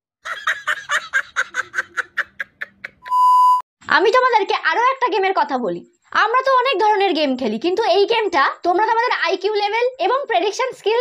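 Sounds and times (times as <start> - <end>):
man laughing: 0.2 - 3.1
censor bleep tone: 3.0 - 3.6.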